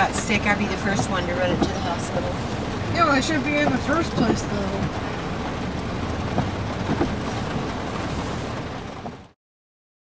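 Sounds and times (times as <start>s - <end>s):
low vehicle rumble: 0.0s - 9.4s
rain on a car: 0.0s - 9.4s
faint knocks: 6.3s - 7.4s.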